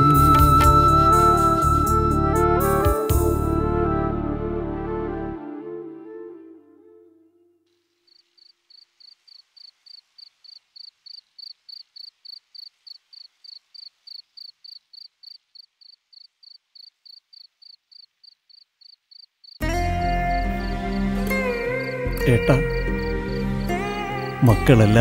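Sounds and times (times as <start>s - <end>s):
music: 0.0s - 7.6s, 19.6s - 25.0s
cricket chirping: 7.8s - 24.6s.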